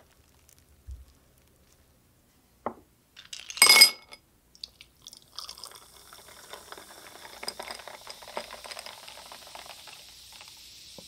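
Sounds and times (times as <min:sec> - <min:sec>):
carbonation fizzing: 0:04.6 - 0:11.0
soda pouring over ice: 0:04.6 - 0:11.0.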